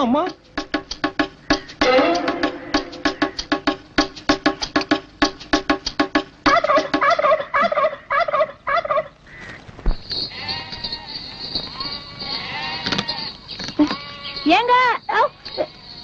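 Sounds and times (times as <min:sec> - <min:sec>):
short repeating musical phrase: 0:01.8 - 0:03.8
goats bleating: 0:10.3 - 0:16.0.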